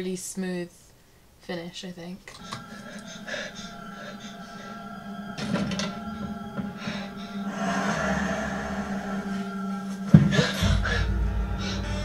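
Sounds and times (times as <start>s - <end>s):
sustained drone of held tones: 2.3s - 12.0s.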